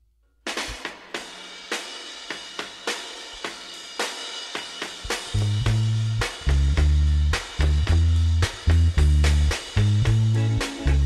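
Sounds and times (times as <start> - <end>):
drum kit beat: 0.4 - 11.0
plucked electric bass notes: 5.3 - 11.0.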